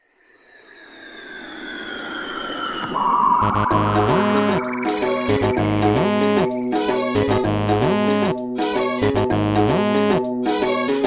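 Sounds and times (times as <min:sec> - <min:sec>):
tones gliding downward: 0:00.4 - 0:08.0
synthesized whoosh: 0:00.6 - 0:08.2.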